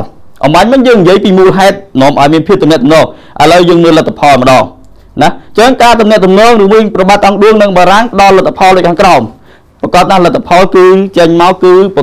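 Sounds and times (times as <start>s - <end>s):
man narrating: 0.0s - 12.0s.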